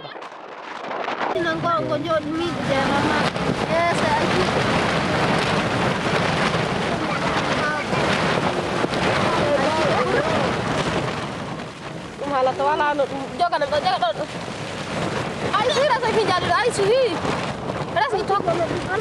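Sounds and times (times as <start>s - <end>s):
heavy rain on cloth covering: 0.0s - 19.0s
storm wind: 0.0s - 19.0s.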